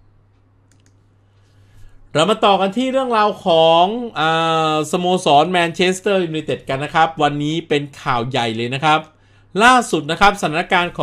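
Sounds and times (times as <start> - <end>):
low steady hum: 0.0 - 11.0
faint short clicks: 0.3 - 1.5.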